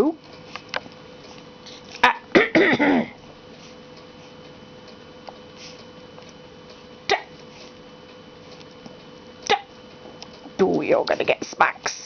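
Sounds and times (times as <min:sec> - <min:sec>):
faint steady hum: 0:00.0 - 0:12.0
person's hiccup-like vocal sound: 0:02.0 - 0:03.1, 0:07.1 - 0:07.3, 0:09.5 - 0:09.7.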